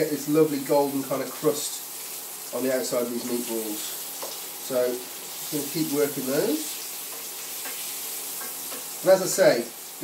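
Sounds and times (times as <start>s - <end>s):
meatballs sizzling in oil: 0.0s - 10.0s.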